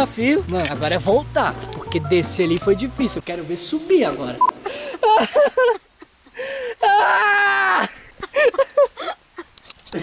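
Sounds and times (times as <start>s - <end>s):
person crying out: 6.7s - 8.0s.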